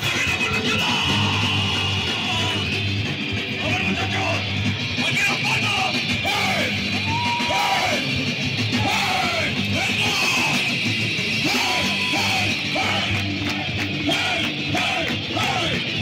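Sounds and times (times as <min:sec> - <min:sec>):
ska punk band playing live: 0:00.0 - 0:16.0.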